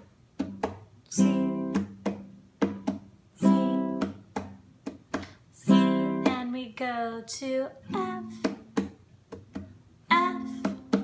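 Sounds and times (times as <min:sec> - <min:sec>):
classical guitar strumming: 0:00.4 - 0:06.6, 0:07.8 - 0:11.0.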